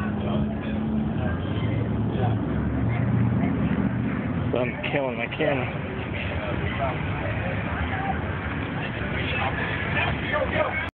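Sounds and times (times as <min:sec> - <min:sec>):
bystanders' voices: 0:00.0 - 0:10.9
vehicle rumble: 0:00.0 - 0:10.9.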